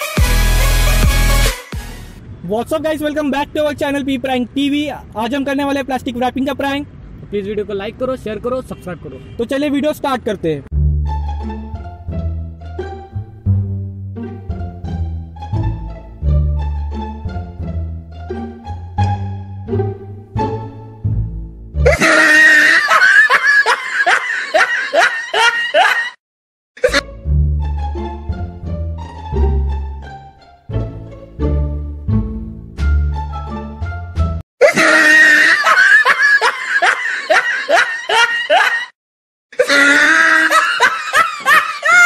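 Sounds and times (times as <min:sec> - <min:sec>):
person laughing loudly: 0:21.9 - 0:26.2, 0:26.8 - 0:27.0, 0:34.6 - 0:42.0.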